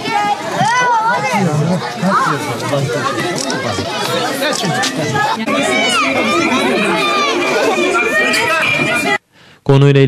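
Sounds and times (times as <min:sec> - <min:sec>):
children chattering: 0:00.0 - 0:09.2.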